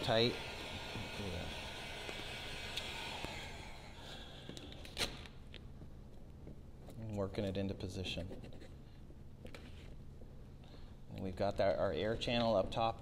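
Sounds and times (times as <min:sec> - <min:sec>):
heat gun fan humming: 0:00.0 - 0:05.9.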